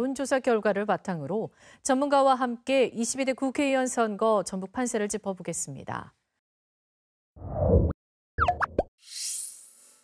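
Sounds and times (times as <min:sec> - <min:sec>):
bubbly popping notes: 0:08.4 - 0:08.9.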